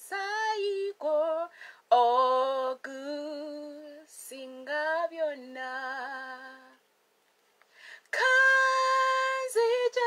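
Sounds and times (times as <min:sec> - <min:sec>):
woman singing a hymn: 0:00.0 - 0:06.8, 0:08.0 - 0:10.0
intake of breath: 0:01.5 - 0:01.9, 0:07.7 - 0:08.1.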